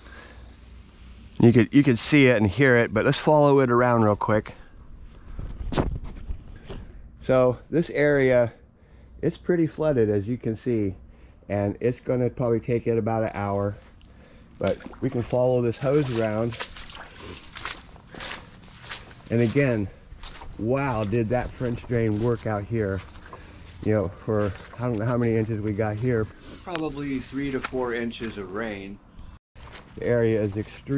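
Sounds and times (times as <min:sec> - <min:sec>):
footsteps through shallow water: 0:13.8 - 0:26.1.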